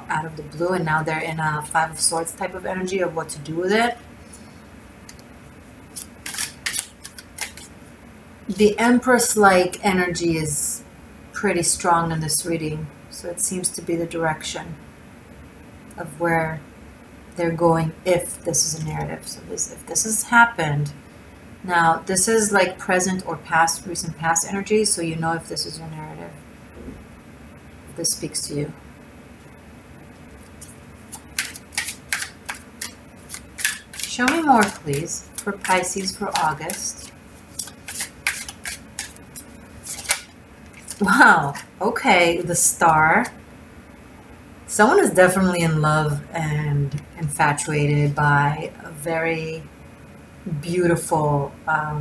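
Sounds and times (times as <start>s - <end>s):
low room hiss: 0.0s - 52.0s
cards rustling and snapping: 5.9s - 7.7s, 30.4s - 41.0s.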